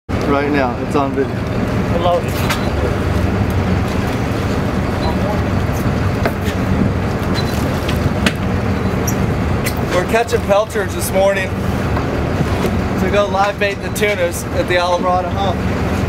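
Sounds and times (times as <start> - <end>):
boat engine rumbling: 0.1 - 16.0.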